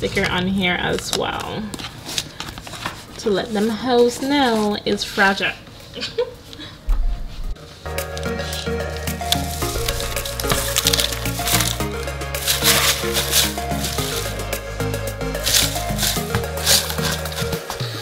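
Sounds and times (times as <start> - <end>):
background music with bass line: 7.2 - 18.0
paper shred rustling in box: 9.2 - 14.6, 15.4 - 18.0.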